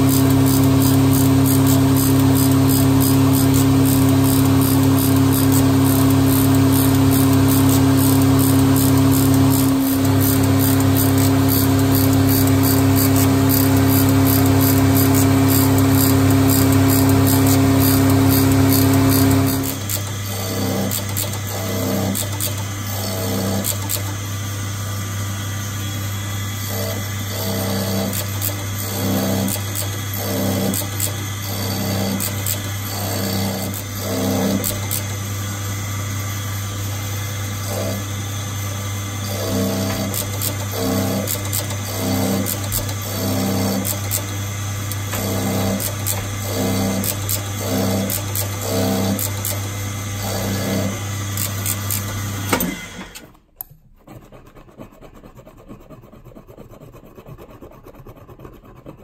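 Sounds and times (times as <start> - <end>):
cutter ticking on metal: 0.0 - 24.2, 26.6 - 35.2, 37.3 - 38.2, 39.2 - 52.8
cutting machine humming: 0.0 - 53.3.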